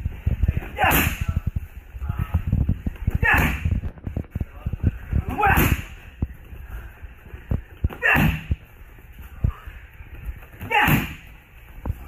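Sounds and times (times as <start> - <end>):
kicks slapping a kick pad: 7.9 - 8.6.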